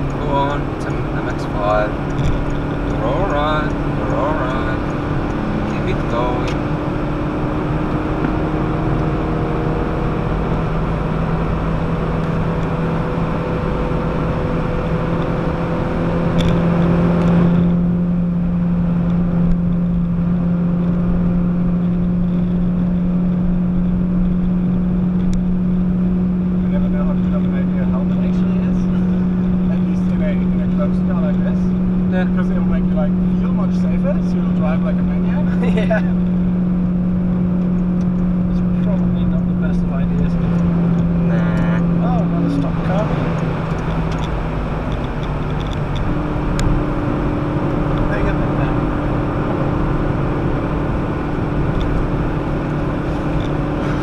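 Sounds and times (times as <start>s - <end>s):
car engine pulling: 0.0s - 54.0s
road and wind noise: 0.0s - 54.0s.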